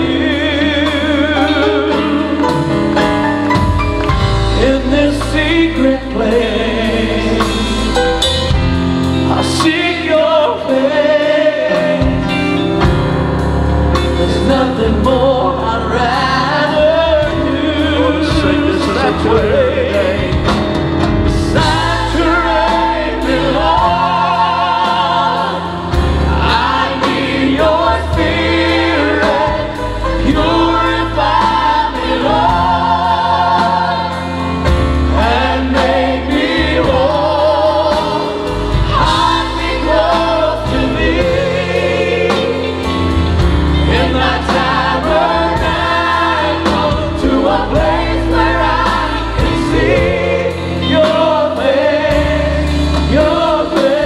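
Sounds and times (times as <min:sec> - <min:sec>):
drums: 0:00.0 - 0:54.0
group singing gospel: 0:00.0 - 0:54.0
keyboards: 0:00.0 - 0:54.0.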